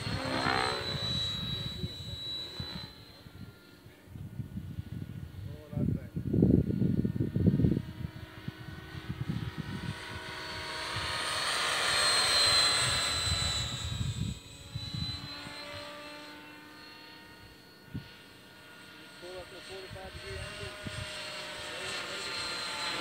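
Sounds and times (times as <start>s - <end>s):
rotor blade noise: 0.0s - 3.9s, 7.8s - 23.0s
rc helicopter motor whine: 0.0s - 23.0s.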